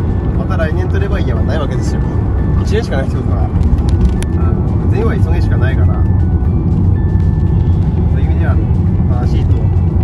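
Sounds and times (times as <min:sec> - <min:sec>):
car cabin road and engine drone: 0:00.0 - 0:10.0.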